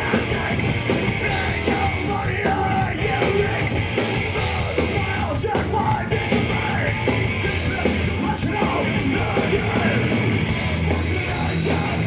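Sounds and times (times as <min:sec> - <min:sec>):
bass guitar: 0:00.0 - 0:12.0
distorted guitar: 0:00.0 - 0:12.0
drums: 0:00.0 - 0:12.0
gruff shouted vocals: 0:01.3 - 0:03.8.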